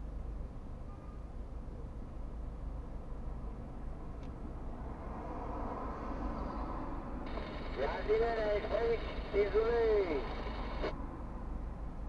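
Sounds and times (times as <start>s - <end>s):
person speaking: 7.6s - 10.9s.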